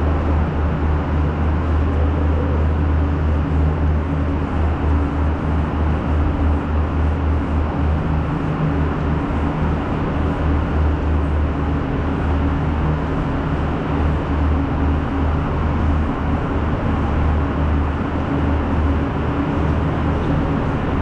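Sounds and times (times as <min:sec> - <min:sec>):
diesel train engine idling: 0:00.0 - 0:21.0.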